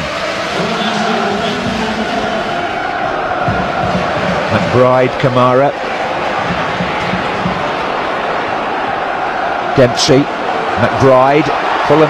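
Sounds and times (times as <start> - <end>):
stadium crowd chanting: 0.0 - 12.0.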